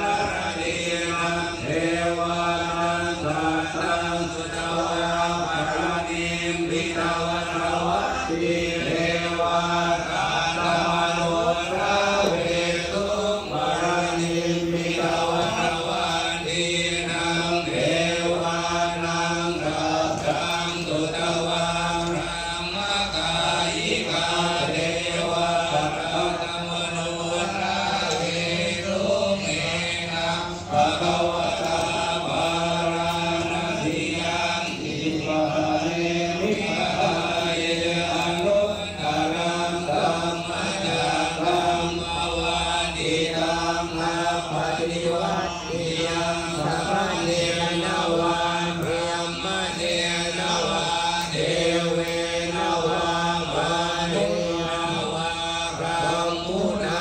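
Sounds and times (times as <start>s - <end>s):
monks chanting in unison: 0.0s - 57.0s.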